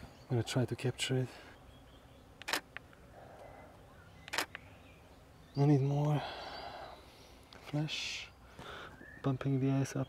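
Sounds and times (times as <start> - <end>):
camera shutter click: 2.4 - 2.8, 4.3 - 4.6.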